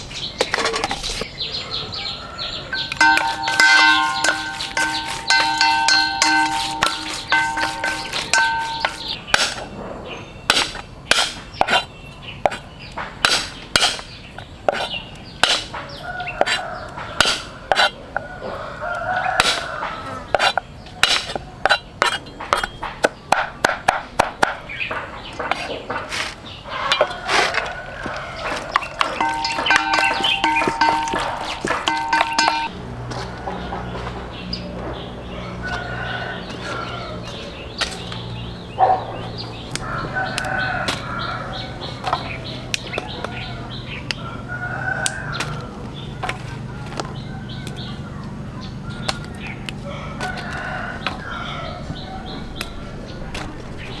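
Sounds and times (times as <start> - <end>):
utensils clicking against metal bowl: 2.7 - 9.2, 28.5 - 32.7.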